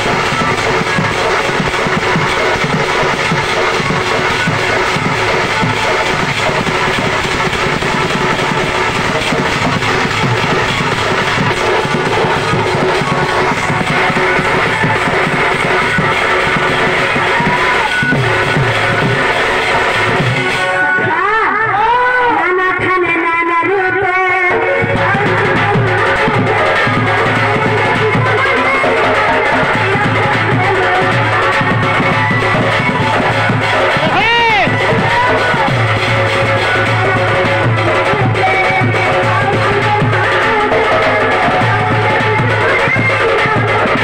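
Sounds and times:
barrel drum beating: 0.0 - 21.3, 24.7 - 44.0.

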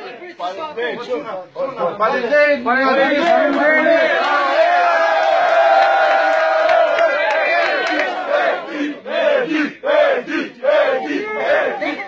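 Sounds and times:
men chanting in unison: 7.3 - 12.0.

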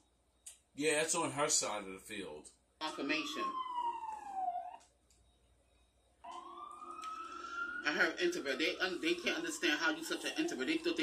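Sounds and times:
siren wailing: 2.8 - 4.8, 6.2 - 11.0.

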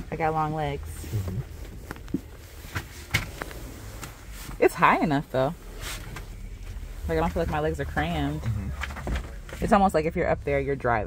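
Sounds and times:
woman's voice: 0.0 - 1.1, 4.6 - 5.6, 7.0 - 8.5, 9.6 - 11.0.

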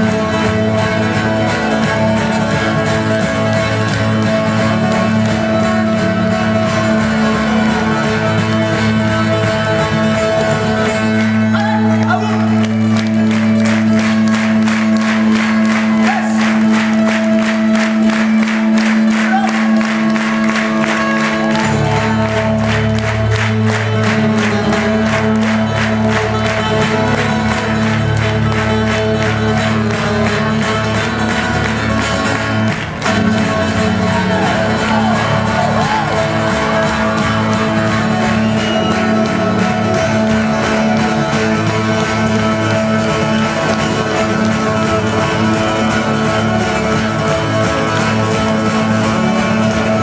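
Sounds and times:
acoustic band playing: 0.0 - 50.0.

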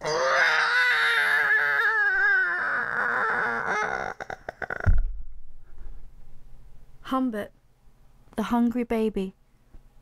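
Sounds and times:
baby-like wail and sobs: 0.0 - 4.9.

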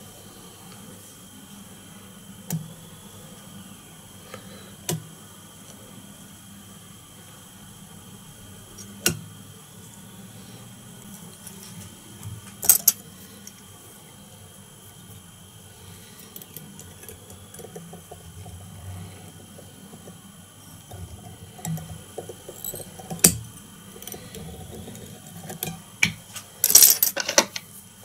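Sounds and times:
tool clicks and metallic clinks: 22.5 - 22.9.

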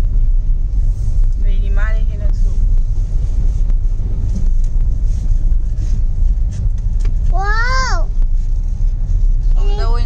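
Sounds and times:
car cabin road rumble: 0.0 - 10.0
child's voice: 7.3 - 8.2.

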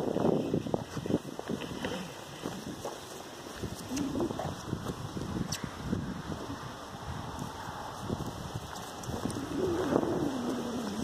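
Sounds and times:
footsteps on grass: 0.0 - 5.4.

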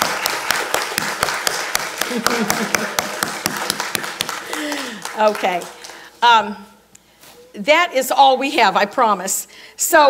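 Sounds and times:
small audience clapping: 0.0 - 6.2.

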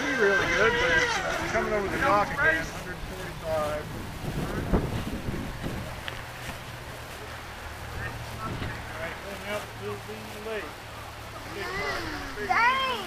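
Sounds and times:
wind buffeting microphone: 0.2 - 9.1.

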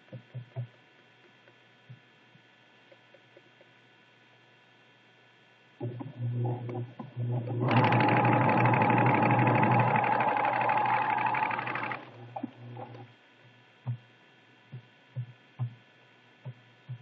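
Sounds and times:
sewing machine stitching: 6.6 - 13.1.

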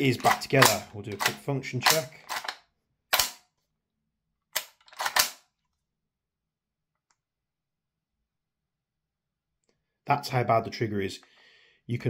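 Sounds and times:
metallic clack of gun action: 0.0 - 3.5, 4.6 - 5.4.

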